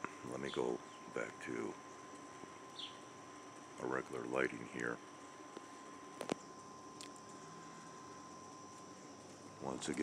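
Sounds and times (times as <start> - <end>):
thin steady high tones: 0.0 - 10.0.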